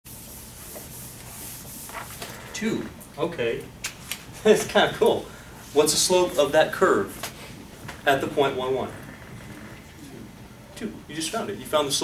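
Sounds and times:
eraser rubbing on whiteboard: 0.1 - 2.2.

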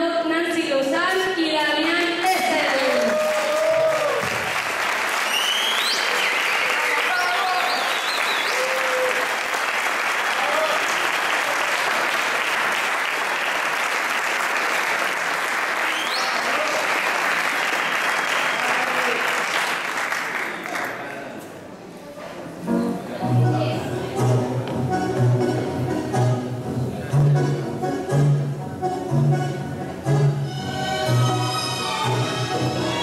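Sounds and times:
audience applauding: 2.2 - 21.3
rising whistles: 5.2 - 9.0, 15.9 - 16.4.

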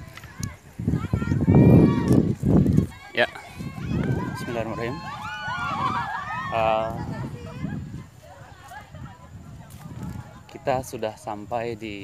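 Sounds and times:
indistinct chatter: 0.0 - 11.5.

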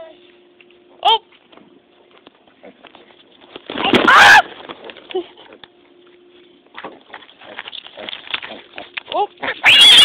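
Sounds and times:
pig squealing: 9.4 - 10.0.

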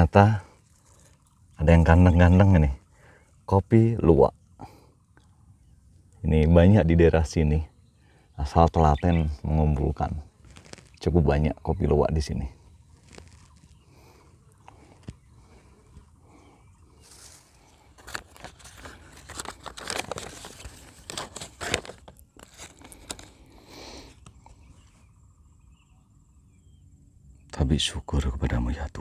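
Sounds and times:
paper wrapper crinkling: 10.4 - 11.0, 13.0 - 13.8, 17.1 - 23.5.

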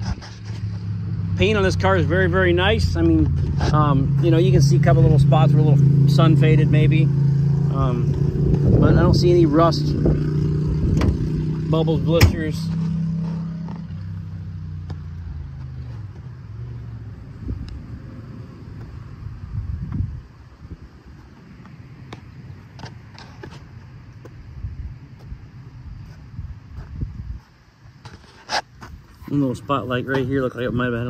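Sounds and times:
low rumbling: 0.0 - 22.0
vehicle engine hum: 0.0 - 31.0.

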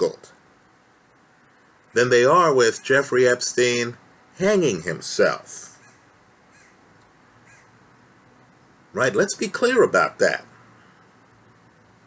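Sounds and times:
faint bird calls: 5.6 - 7.8, 10.7 - 11.2.

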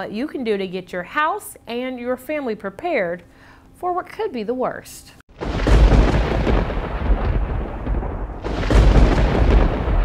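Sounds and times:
thunder rumbling: 5.3 - 10.0.

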